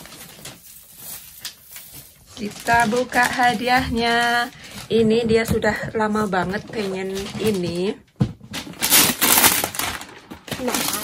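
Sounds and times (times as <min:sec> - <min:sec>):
wrapping paper tearing: 0:00.0 - 0:05.0, 0:08.6 - 0:11.0.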